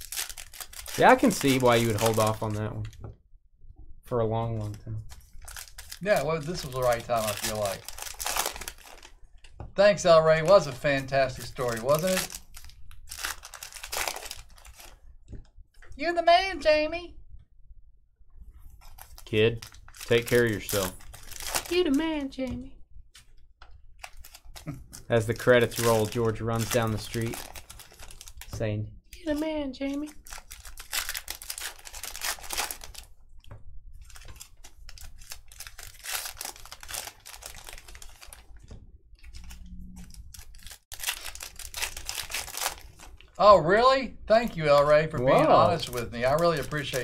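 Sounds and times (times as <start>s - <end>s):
foil wrappers crinkling and tearing: 0.0s - 2.6s, 5.1s - 9.2s, 10.5s - 15.0s, 18.8s - 22.2s, 24.0s - 28.5s, 29.2s - 33.1s, 34.0s - 38.6s, 39.2s - 43.4s, 44.5s - 47.0s
card packs rustling and clicking: 0.0s - 2.9s, 4.6s - 9.5s, 10.5s - 15.0s, 18.9s - 22.2s, 24.0s - 33.1s, 34.0s - 43.4s, 44.4s - 47.0s
drawn-out voice: 45.2s - 45.9s.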